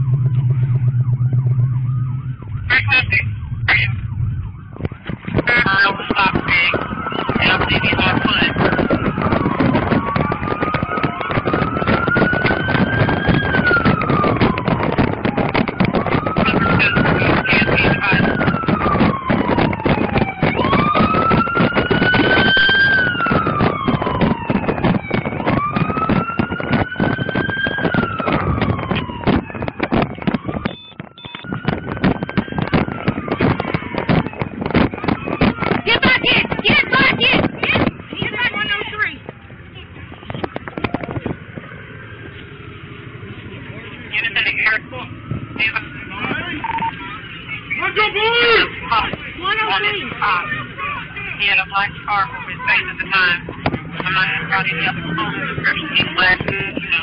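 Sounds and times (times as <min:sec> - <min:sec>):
police siren wailing: 0:00.0 - 0:57.0
microphone rustle and knocks: 0:40.2 - 0:41.7.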